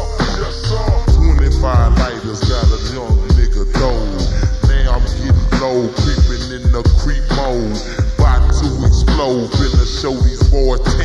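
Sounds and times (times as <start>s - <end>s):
man rapping over a beat: 0.0s - 11.0s.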